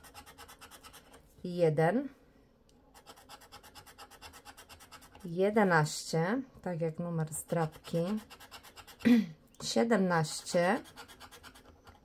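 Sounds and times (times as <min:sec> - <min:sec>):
scratching lottery ticket: 0:03.0 - 0:05.4, 0:07.3 - 0:09.0, 0:10.4 - 0:12.0.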